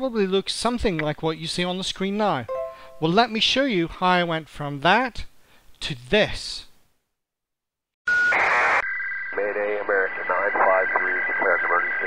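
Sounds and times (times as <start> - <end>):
steady high tones: 2.5 - 3.3
man speaking over radio: 9.4 - 12.0.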